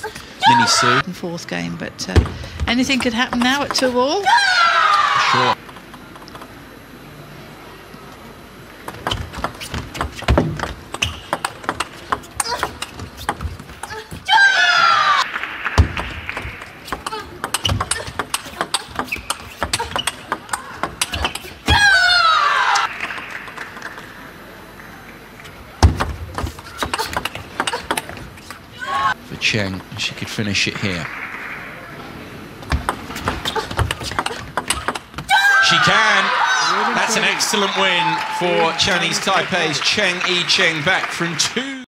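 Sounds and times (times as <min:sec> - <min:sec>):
player shouting: 0:00.4 - 0:01.0, 0:35.3 - 0:39.1
footwork thuds: 0:08.8 - 0:14.3, 0:15.8 - 0:21.9, 0:25.8 - 0:28.6
table tennis ball clicking: 0:16.9 - 0:21.5.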